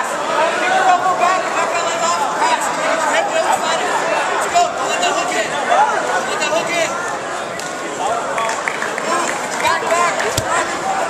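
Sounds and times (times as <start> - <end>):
crowd chatter and calling out: 0.0 - 11.0.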